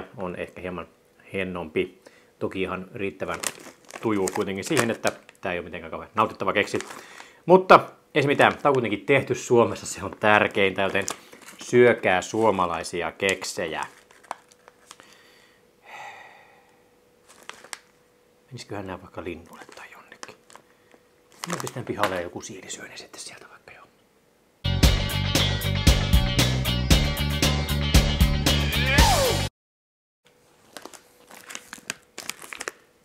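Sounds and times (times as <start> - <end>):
cookie packet crinkling: 3.0 - 7.4, 8.2 - 15.3, 17.2 - 18.0, 19.2 - 22.6, 30.4 - 33.0.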